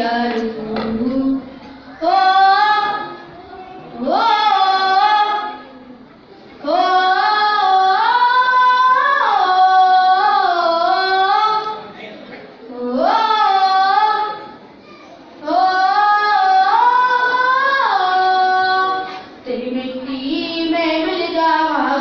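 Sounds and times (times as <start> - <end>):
boy singing into a microphone: 0.0 - 22.0.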